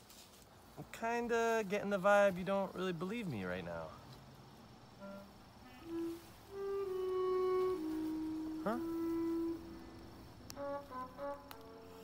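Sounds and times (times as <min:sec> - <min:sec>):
long held music note: 0:05.0 - 0:12.0.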